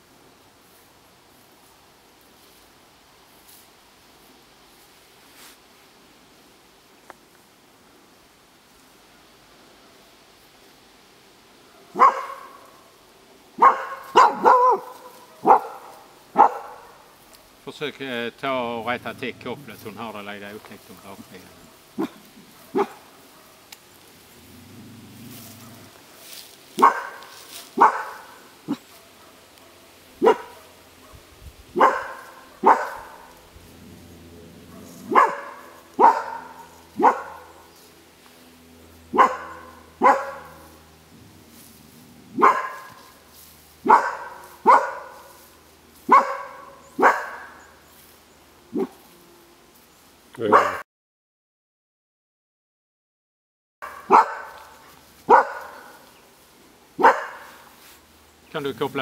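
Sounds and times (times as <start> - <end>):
dog barking: 11.6 - 13.0, 13.6 - 17.6, 20.9 - 23.7, 25.6 - 33.4, 34.6 - 37.7, 39.1 - 40.7, 42.4 - 43.2, 43.8 - 45.4, 46.1 - 47.7, 48.7 - 49.0, 50.4 - 50.8, 53.8 - 56.0, 57.0 - 57.7.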